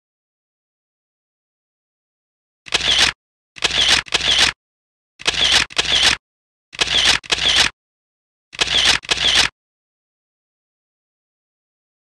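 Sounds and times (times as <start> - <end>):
camera shutter snaps: 2.7 - 4.6, 5.2 - 6.2, 6.8 - 7.7, 8.6 - 9.5.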